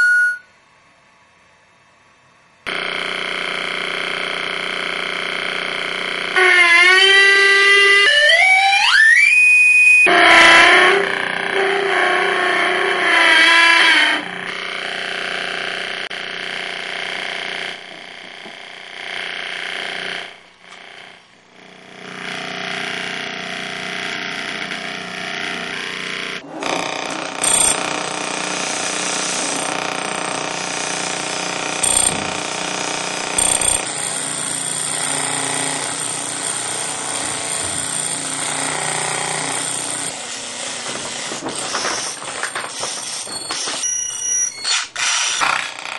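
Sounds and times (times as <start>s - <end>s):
short high beeps: 0.0s - 0.5s, 31.8s - 32.2s, 33.4s - 33.8s
noisy electrical drone: 2.6s - 8.2s, 13.8s - 45.9s.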